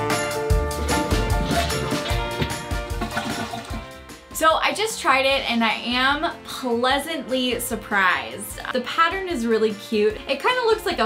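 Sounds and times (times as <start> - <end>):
background music: 0.0 - 11.0
toilet flushing: 0.8 - 4.0
woman speaking: 4.4 - 11.0.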